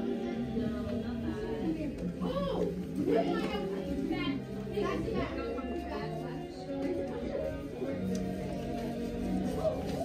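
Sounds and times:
background music: 0.0 - 10.0
young children talking and calling: 0.0 - 10.0.

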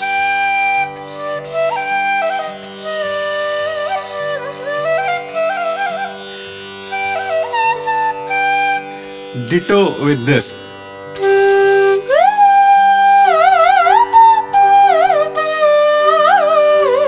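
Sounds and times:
bamboo flute melody: 0.0 - 10.0, 11.1 - 17.0.

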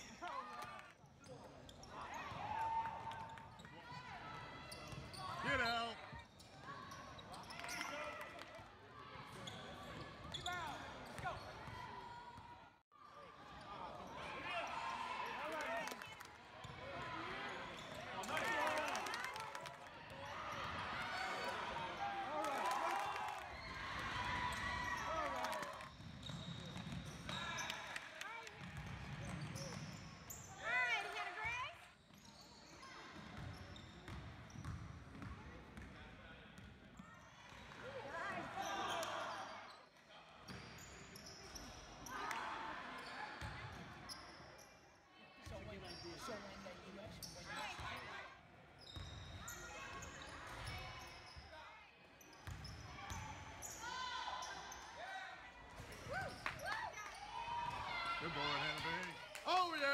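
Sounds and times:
spectators' voices and shouts: 10.5 - 25.9, 53.1 - 59.9.

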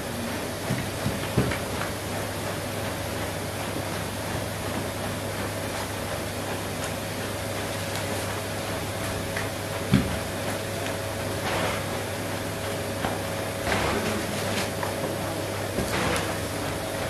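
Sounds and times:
workshop room hum and hiss: 0.0 - 17.0.

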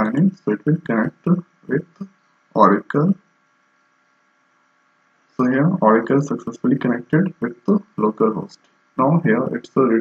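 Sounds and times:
spoken word: 0.0 - 3.2
faint background hum: 0.0 - 10.0.

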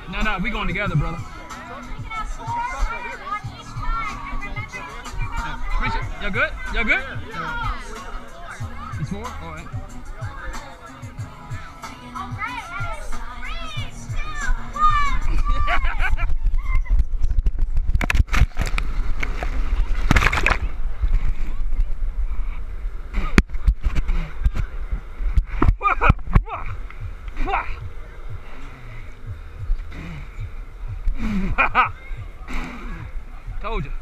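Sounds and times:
people shouting: 1.2 - 10.8, 11.6 - 16.0
wind rumble on microphone: 14.1 - 34.0
splashing through wet foam: 18.0 - 20.8.

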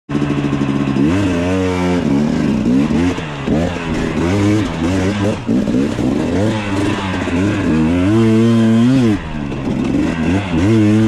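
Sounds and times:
motorcycle engine idling and revving: 0.1 - 11.0.

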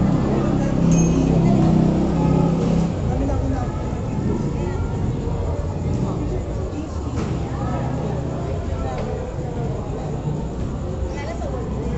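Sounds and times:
indistinct voices: 0.0 - 11.9.

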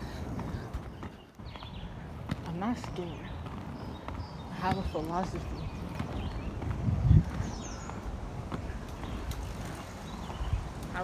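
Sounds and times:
skate wheels rumbling on pavement: 0.0 - 11.0.

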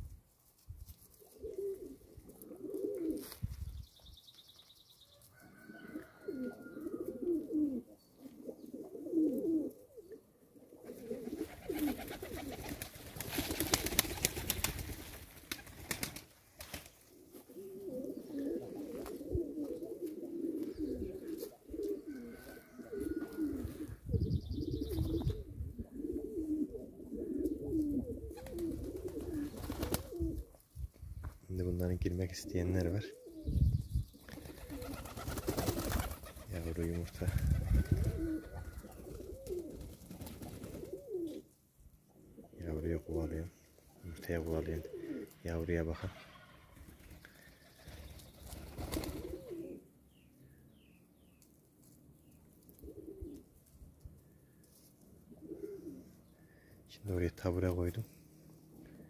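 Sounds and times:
pigeons cooing: 1.2 - 3.4, 5.3 - 16.2, 17.0 - 30.6, 32.3 - 50.6, 52.7 - 53.5, 55.2 - 56.8.

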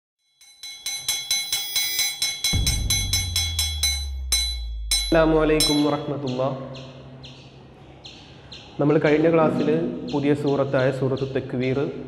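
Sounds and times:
hammer striking hanging metal ring: 0.2 - 6.2.

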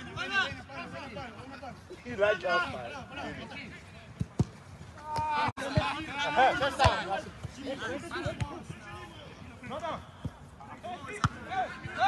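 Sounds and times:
ball kick thuds: 4.2 - 6.0
players shouting: 5.0 - 12.0.

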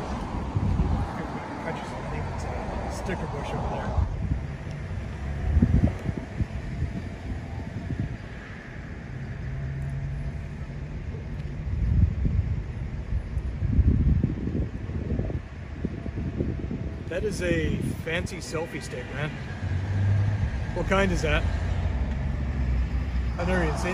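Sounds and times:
wind buffeting microphone: 0.0 - 9.4, 11.5 - 23.9.

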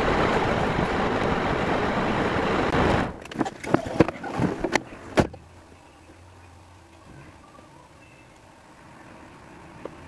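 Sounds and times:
vehicle low hum: 0.0 - 10.0.

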